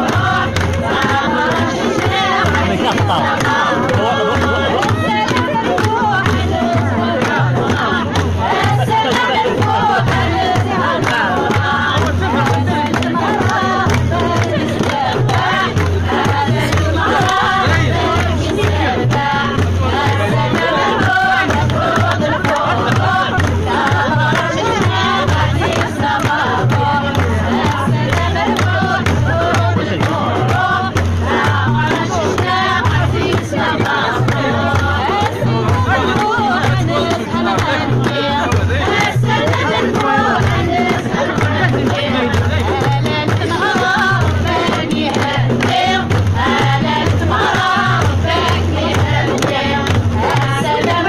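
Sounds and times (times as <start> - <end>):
frame drums beating: 0.0 - 51.0
hand clapping: 0.0 - 51.0
women singing together: 0.0 - 51.0.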